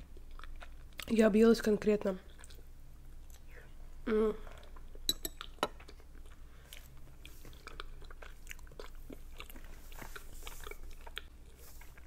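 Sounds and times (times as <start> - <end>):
close chewing with mouth clicks: 0.0 - 1.1, 2.2 - 3.6, 4.5 - 12.0.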